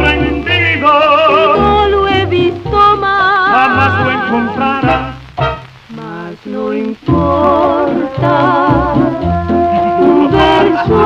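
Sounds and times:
orchestra music on a gramophone record: 0.0s - 11.0s.

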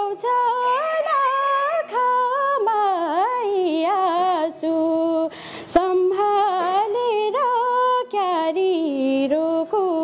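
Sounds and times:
woman singing folk song: 0.0s - 10.0s.

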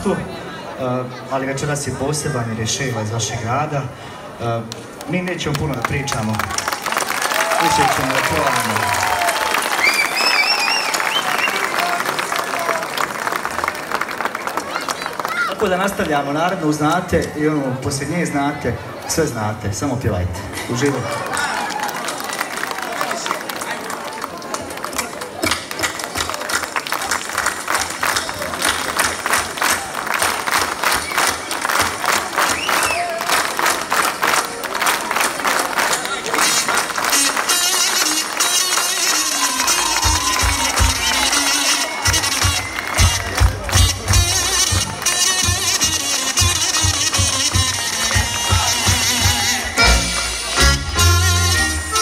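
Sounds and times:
rhythmic hand clapping: 21.2s - 52.0s
live band music: 36.2s - 52.0s
heavy bass drum beat: 39.6s - 52.0s.

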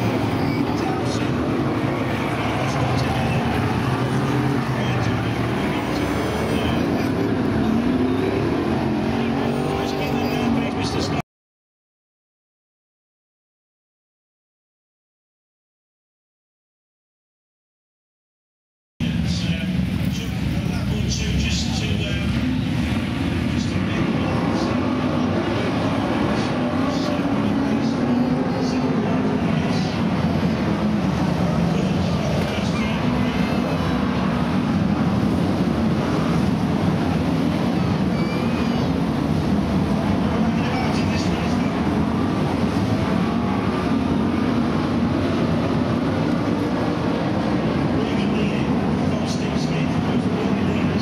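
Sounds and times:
race car engines revving: 0.0s - 11.2s, 19.0s - 51.0s.

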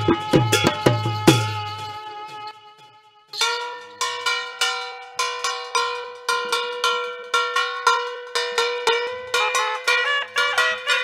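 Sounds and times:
plucked string instrument: 0.0s - 11.0s.

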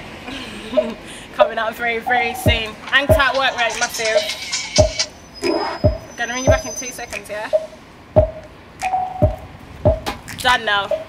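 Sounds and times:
deep kick drum hits: 2.5s - 3.3s, 4.8s - 5.0s, 5.9s - 6.6s, 8.2s - 8.4s, 9.2s - 10.1s.

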